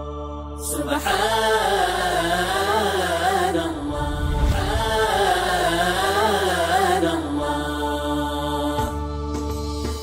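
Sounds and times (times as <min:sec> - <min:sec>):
person chanting: 0:00.7 - 0:08.3.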